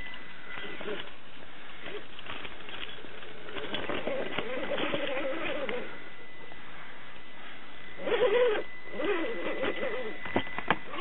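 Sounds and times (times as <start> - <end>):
electric motor and gears whining: 0.0 - 11.0.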